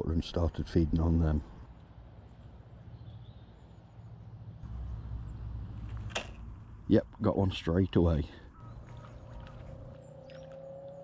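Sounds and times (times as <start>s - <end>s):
faint bird chirps: 8.4s - 11.0s.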